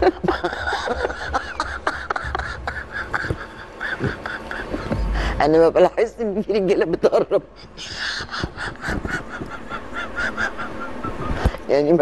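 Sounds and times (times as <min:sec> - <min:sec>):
woman laughing: 0:00.0 - 0:05.0, 0:06.9 - 0:11.5.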